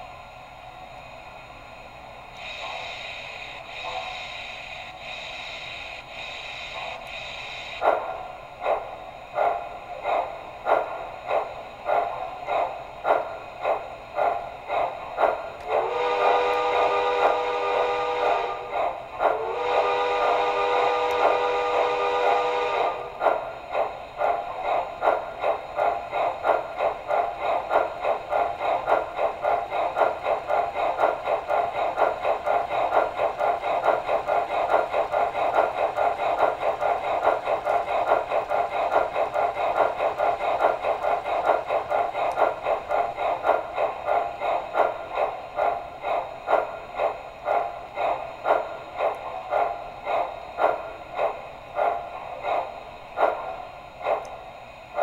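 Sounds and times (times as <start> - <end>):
model steam locomotive chuffs: 0.0 - 55.0.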